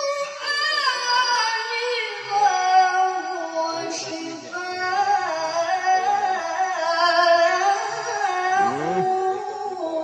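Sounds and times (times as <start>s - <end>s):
woman reciting melodically: 0.0s - 10.0s.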